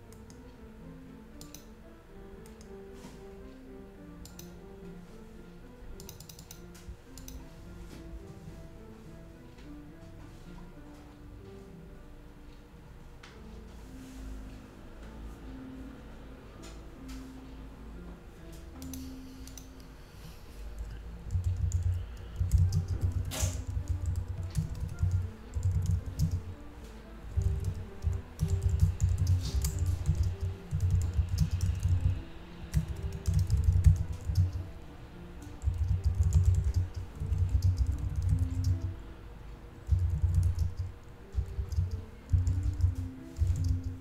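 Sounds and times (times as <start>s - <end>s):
computer keyboard typing: 1.4s - 1.7s, 6.0s - 6.6s, 18.8s - 19.7s, 20.8s - 26.5s, 27.3s - 34.6s, 35.6s - 38.9s, 39.8s - 44.0s.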